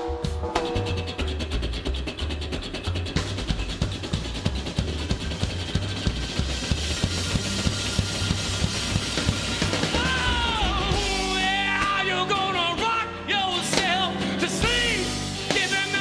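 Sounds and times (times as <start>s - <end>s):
drum kit beat: 0.0s - 16.0s
upright double bass: 0.0s - 16.0s
acoustic guitar: 0.6s - 16.0s.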